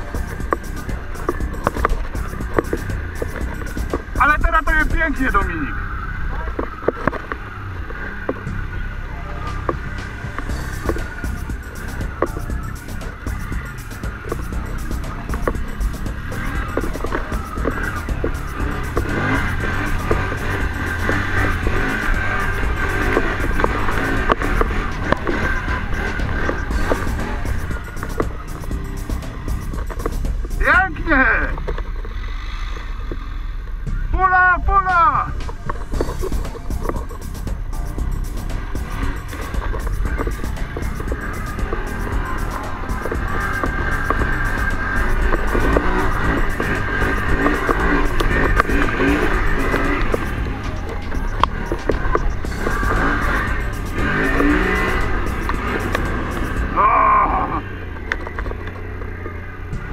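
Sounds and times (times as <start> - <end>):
atv engine droning: 0.0 - 59.9.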